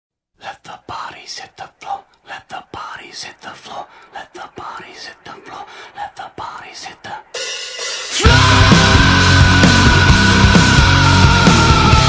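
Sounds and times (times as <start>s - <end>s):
person speaking breathily: 0.4s - 7.4s.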